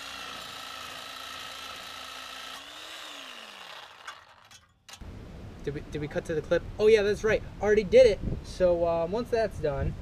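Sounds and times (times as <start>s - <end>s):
reciprocating saw cutting metal pipe: 0.0s - 5.0s.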